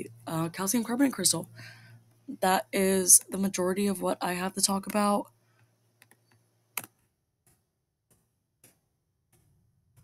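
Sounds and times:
computer mouse clicks: 5.6 - 9.4.

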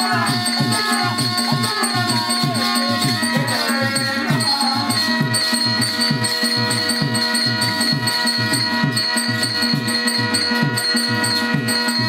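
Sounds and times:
hand drum rhythm: 0.0 - 12.0
high jingle: 0.0 - 12.0.

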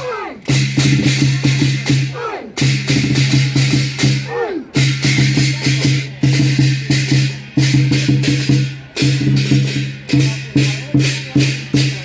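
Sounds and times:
drum cymbals and gong beat: 0.0 - 12.0.

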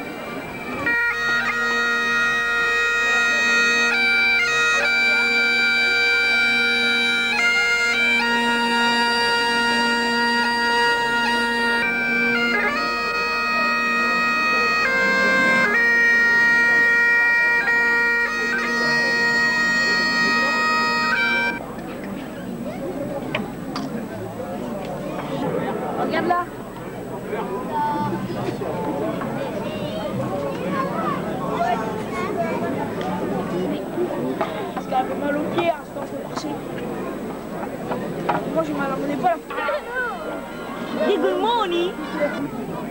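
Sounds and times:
bagpipes playing a tune: 0.0 - 21.7, 31.1 - 42.9.

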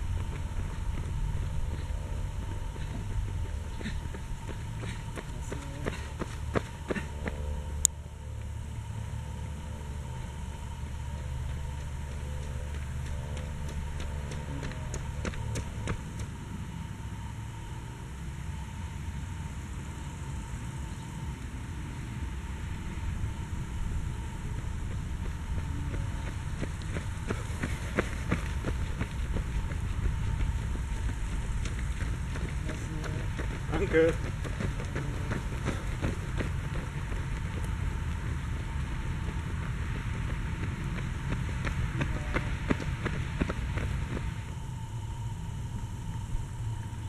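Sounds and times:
runners' footsteps on asphalt: 0.0 - 7.8, 9.8 - 16.8, 22.6 - 44.7
steady low rumble: 0.0 - 47.0.

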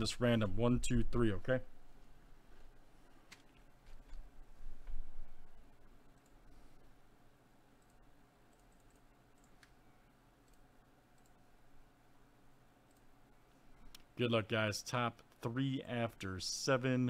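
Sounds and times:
low electrical hum: 0.0 - 17.0
computer mouse clicks: 3.3 - 5.0, 6.0 - 6.5, 7.8 - 9.8, 10.4 - 11.4, 12.8 - 13.1.

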